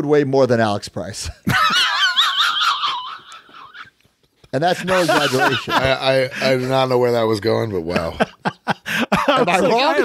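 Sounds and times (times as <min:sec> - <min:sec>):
men laughing: 0:01.4 - 0:10.0
high-pitched shrieking laugh: 0:01.8 - 0:03.9.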